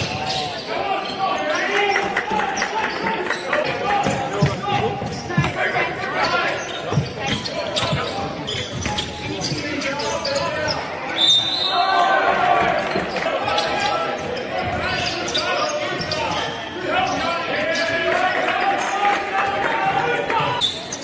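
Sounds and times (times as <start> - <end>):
players' voices echoing: 0.0 - 21.0.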